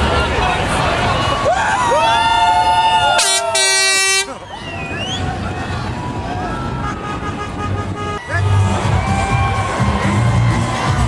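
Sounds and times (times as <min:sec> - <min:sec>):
crowd whooping and shouting: 0:01.1 - 0:07.0, 0:08.2 - 0:11.0
vehicle horn blasts: 0:03.2 - 0:04.4, 0:06.9 - 0:08.2.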